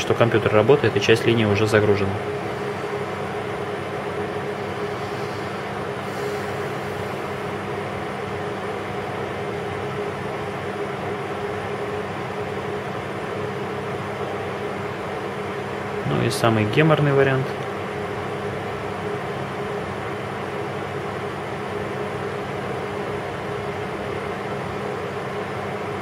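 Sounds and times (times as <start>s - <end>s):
machinery room hum: 0.0s - 26.0s.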